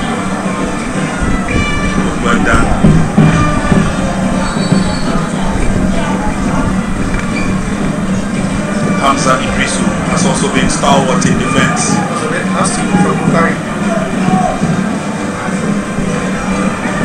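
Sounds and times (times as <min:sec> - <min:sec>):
music: 0:00.0 - 0:17.0
pitched crowd calls: 0:00.0 - 0:17.0
stadium crowd drone: 0:00.0 - 0:17.0.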